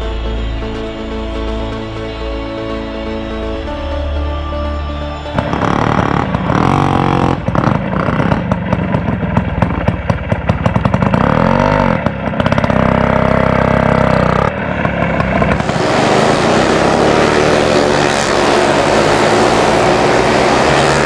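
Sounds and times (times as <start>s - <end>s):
small motorcycle engine revving: 5.4s - 21.0s.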